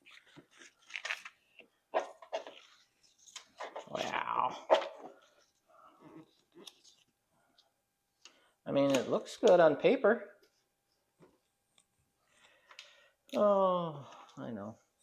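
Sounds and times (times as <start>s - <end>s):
paper rustling: 0.0s - 4.1s.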